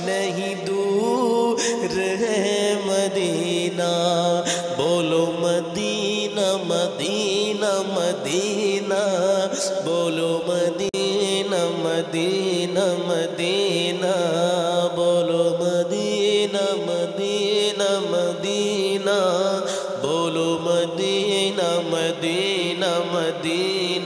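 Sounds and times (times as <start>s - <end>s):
man singing devotional song: 0.0s - 24.0s.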